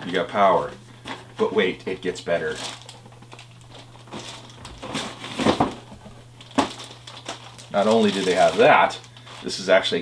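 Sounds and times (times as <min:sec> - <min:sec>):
plastic packaging clacks and crinkles: 0:00.0 - 0:10.0.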